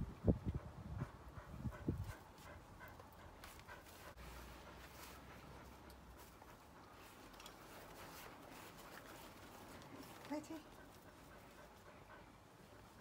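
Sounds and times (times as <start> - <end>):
dog panting: 0.4 - 13.0.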